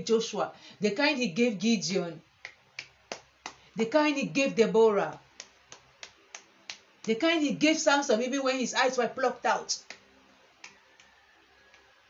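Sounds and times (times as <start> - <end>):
person speaking: 0.0 - 2.3, 3.6 - 6.4, 7.0 - 10.0
finger snaps: 2.4 - 3.7, 5.1 - 7.2, 9.8 - 12.0.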